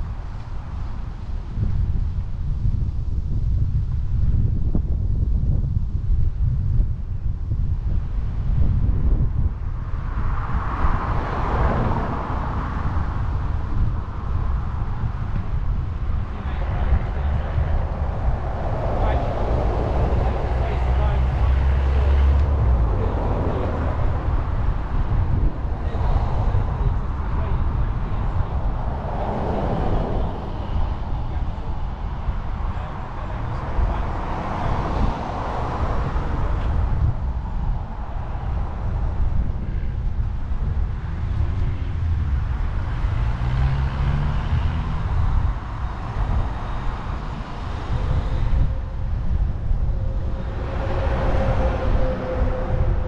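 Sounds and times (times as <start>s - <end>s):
wind buffeting microphone: 0.0s - 53.0s
road traffic passing: 7.4s - 53.0s.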